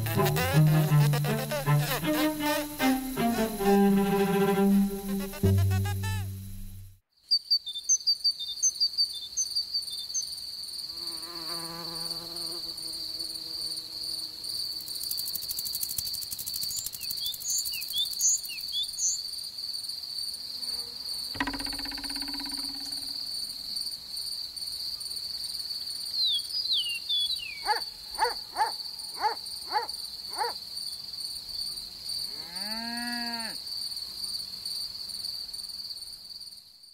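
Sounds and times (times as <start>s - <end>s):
music cue: 0.0s - 7.0s
bird chirps: 5.0s - 10.3s, 16.6s - 19.2s, 26.2s - 29.3s
short animal calls: 27.6s - 30.6s.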